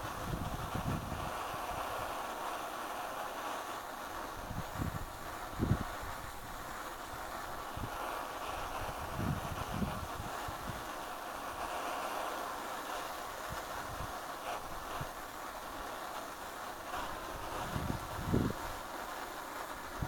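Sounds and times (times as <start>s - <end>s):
wind buffeting microphone: 0.0s - 2.1s, 4.2s - 11.6s, 13.0s - 15.7s, 16.3s - 20.0s
petrol stove burning: 0.0s - 20.0s.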